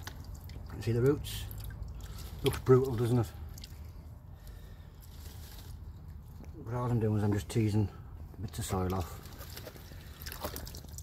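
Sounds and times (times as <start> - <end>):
water trickling and dripping: 0.0 - 4.6, 8.9 - 11.0.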